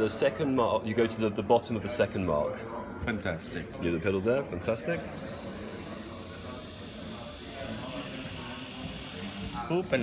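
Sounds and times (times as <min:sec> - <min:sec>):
dental drill high-pitched whine: 0:05.2 - 0:10.0.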